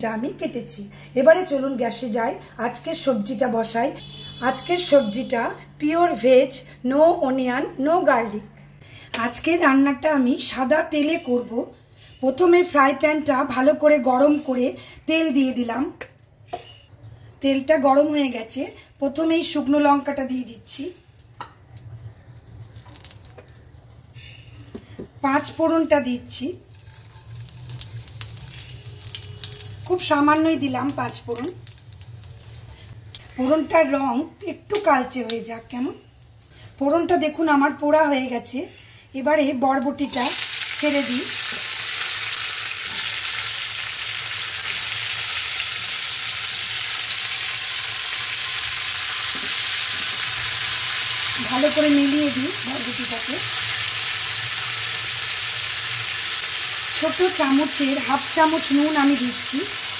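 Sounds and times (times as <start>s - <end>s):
chilli popping in hot oil: 20.8s - 38.5s, 39.4s - 59.9s.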